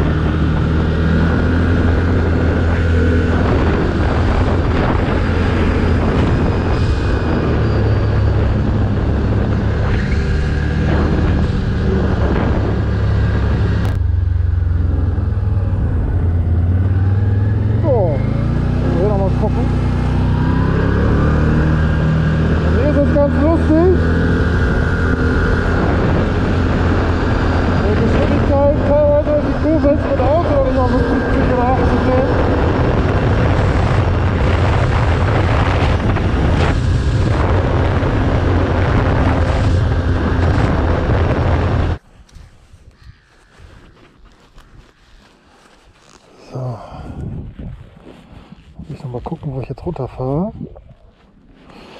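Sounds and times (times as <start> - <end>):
quad engine running: 0.0 - 42.0
wind rushing over microphone: 0.0 - 51.9.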